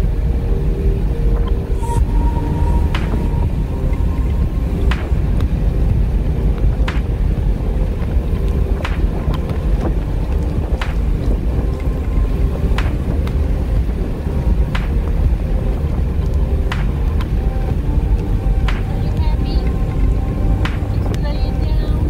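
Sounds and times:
car road rumble inside cabin: 0.0 - 22.0.

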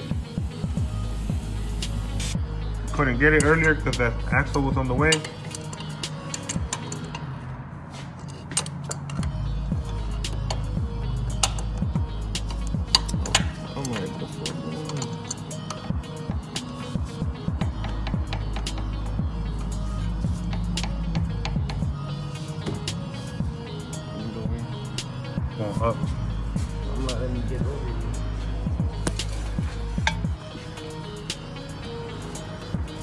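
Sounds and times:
background music: 0.0 - 33.0
socket wrench clicking: 5.1 - 7.3, 8.3 - 9.3, 11.3 - 14.1, 14.8 - 15.9.

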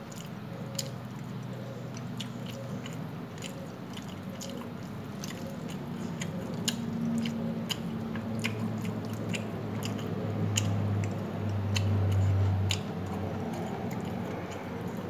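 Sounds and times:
close-up chewing: 0.0 - 15.0
steady low hum: 0.0 - 15.0.

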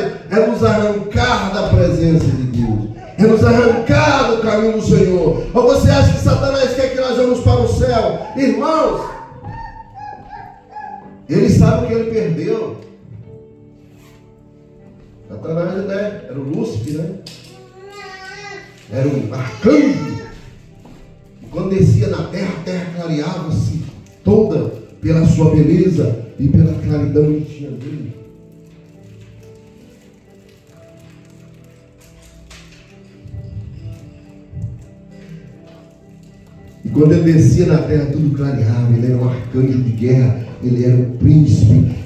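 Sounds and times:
soft music of held chords: 0.0 - 42.0.

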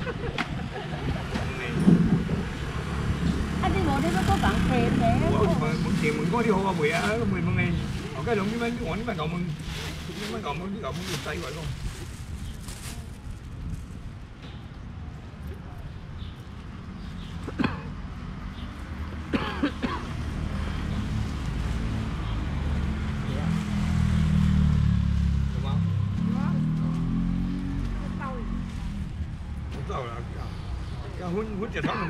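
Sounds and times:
vehicle engine humming: 0.0 - 11.6
background chatter: 0.0 - 13.8.

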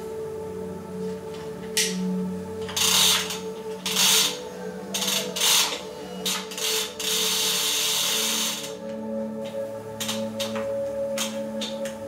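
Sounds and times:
bike chain and wheel spinning: 2.7 - 8.8.

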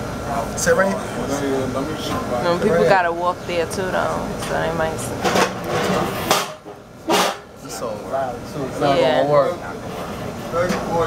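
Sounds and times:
metal chair clattering: 5.2 - 7.5.

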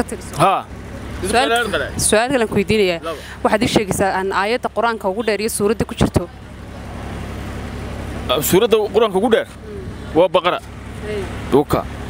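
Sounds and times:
low rumble of street traffic: 0.0 - 12.0.

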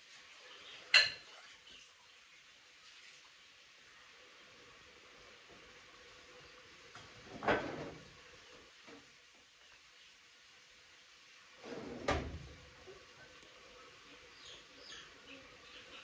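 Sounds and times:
cabinet door sliding: 7.2 - 8.1, 11.6 - 12.7.

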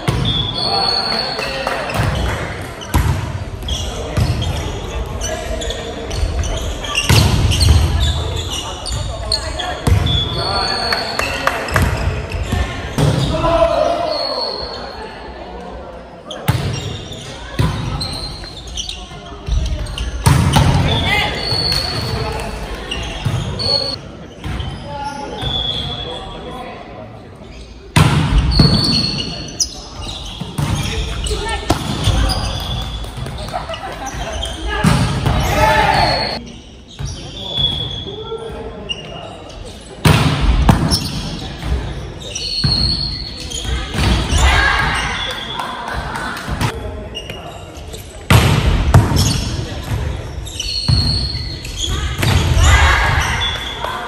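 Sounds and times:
shoes squeaking on court: 0.0 - 13.3, 16.3 - 26.4, 27.3 - 40.0, 40.8 - 46.0, 46.6 - 48.3, 49.1 - 52.3
players shouting: 34.6 - 36.4
volleyball slaps: 40.0 - 41.8.

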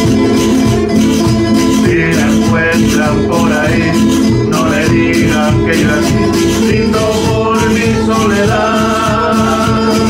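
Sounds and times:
bass drum beaten with stick: 0.0 - 10.0
classical guitar strumming: 0.0 - 10.0
man singing: 0.0 - 10.0.

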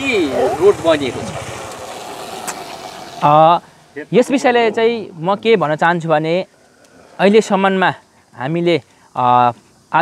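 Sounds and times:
man talking: 0.0 - 1.4, 3.2 - 6.5
vehicle engine running: 0.0 - 4.6.

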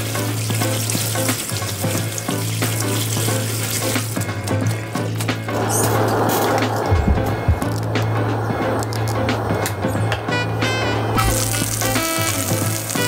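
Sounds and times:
tap water running into sink: 0.0 - 9.8, 11.2 - 13.0
background music: 0.0 - 13.0.

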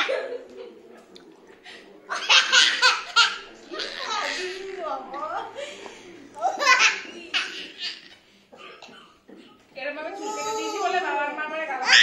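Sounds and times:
laughter: 0.0 - 1.0.

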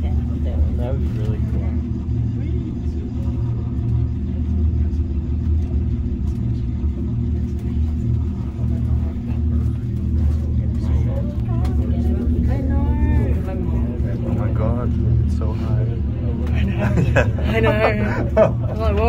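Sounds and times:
cable car cabin rumble and hum: 0.0 - 19.0
faint passenger voices: 0.0 - 19.0.

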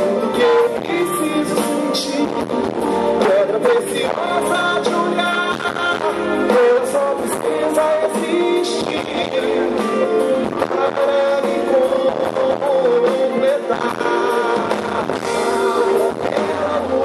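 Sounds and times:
bass guitar: 0.0 - 17.0
drum kit: 0.0 - 17.0
man singing lead vocals: 0.0 - 17.0.

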